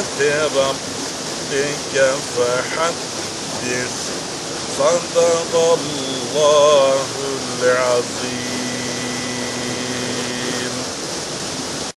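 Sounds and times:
waterfall and river rushing: 0.0s - 12.0s.

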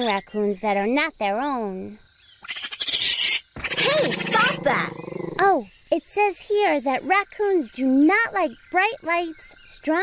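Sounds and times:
cartoon animals hissing: 2.4s - 5.4s
rough snarling growl: 3.7s - 5.4s.

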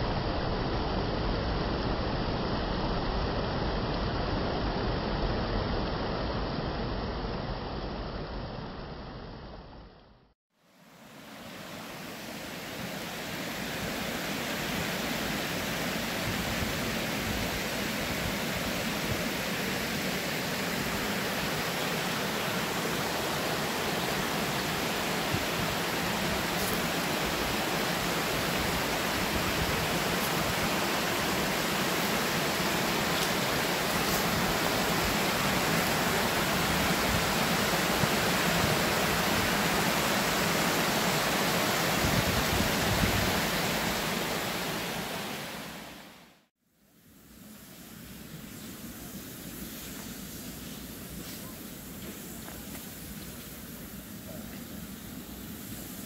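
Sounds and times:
stream running over rocks: 10.8s - 46.2s.

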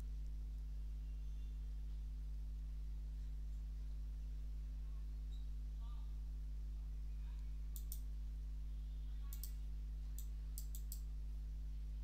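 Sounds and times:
low electrical hum: 0.0s - 12.0s
computer mouse clicking: 7.7s - 8.0s, 9.3s - 9.6s, 10.2s - 11.1s.

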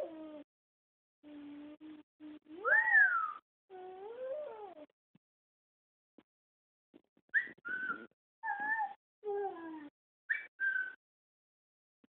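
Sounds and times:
toddler whistling: 2.6s - 3.4s.

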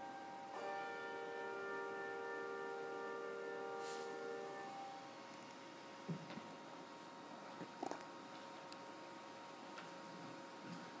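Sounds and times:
faint steady hiss: 0.0s - 11.0s
low steady hum: 0.0s - 11.0s.

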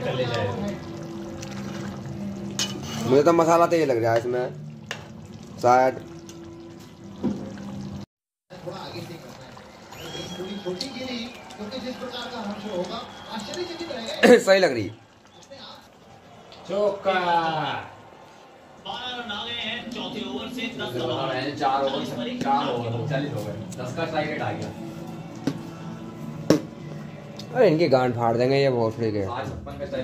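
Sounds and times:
liquid sloshing: 0.0s - 16.8s
metal ladle stirring in a pot: 1.4s - 3.3s
ladle clinking against pot: 2.5s - 3.2s.

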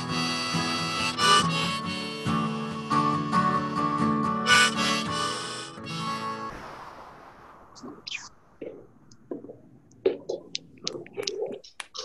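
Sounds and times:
broken whispered speech: 7.8s - 12.0s.

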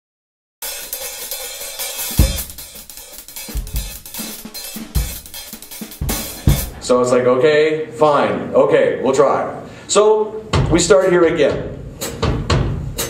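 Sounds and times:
cymbals and hi-hat: 0.6s - 6.9s
bass drum hits: 2.1s - 2.9s, 3.5s - 6.9s.

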